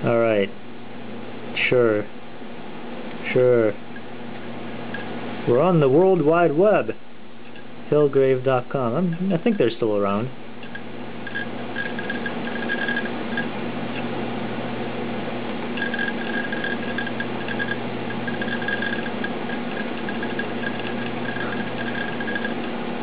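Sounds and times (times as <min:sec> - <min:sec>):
steady low hum: 0:00.0 - 0:23.0
hard disk whirring: 0:03.1 - 0:08.1, 0:08.7 - 0:23.0.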